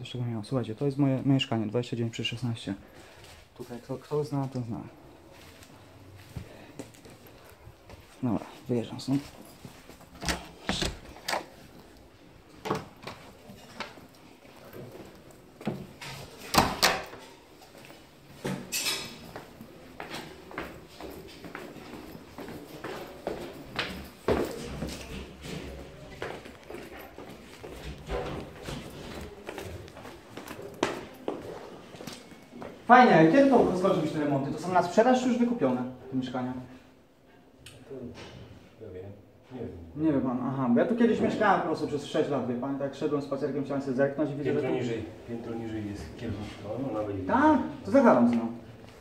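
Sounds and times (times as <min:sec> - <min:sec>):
footsteps on concrete stairs: 0:19.2 - 0:32.8.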